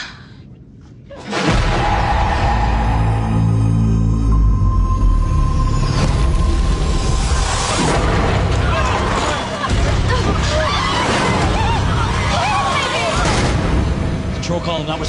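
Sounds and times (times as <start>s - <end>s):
tense music: 0.3s - 15.0s
deep rumble: 0.4s - 15.0s
passengers screaming: 8.6s - 13.4s.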